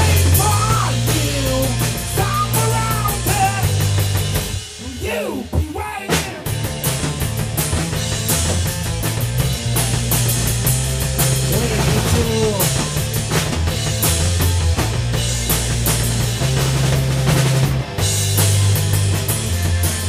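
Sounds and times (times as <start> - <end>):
bass line: 0.0 - 20.0
drum hits: 0.0 - 20.0
rock band playing: 0.0 - 20.0.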